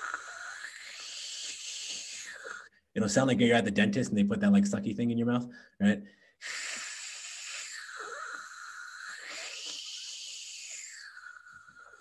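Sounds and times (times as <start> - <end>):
man making raspy hiss: 0.0 - 2.7, 6.4 - 12.0.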